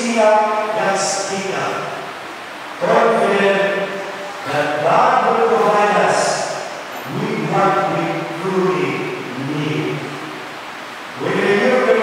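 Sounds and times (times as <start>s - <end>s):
man speaking into a microphone: 0.0s - 2.0s, 2.8s - 10.1s, 11.2s - 12.0s
steady low hiss: 0.0s - 12.0s.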